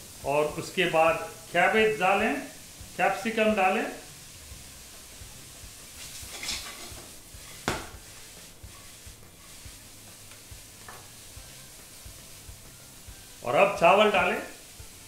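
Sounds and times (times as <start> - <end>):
vegetables sizzling: 0.0 - 15.0
wooden spatula scraping: 5.8 - 12.1.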